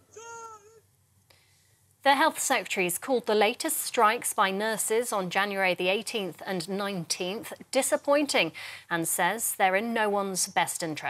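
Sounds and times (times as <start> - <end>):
faint human cry: 0.0 - 0.8.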